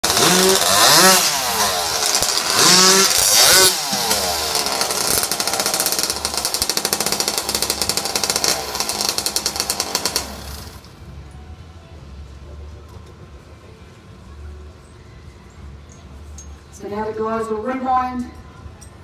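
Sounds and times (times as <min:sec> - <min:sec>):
chainsaws cutting logs: 0:00.0 - 0:10.9.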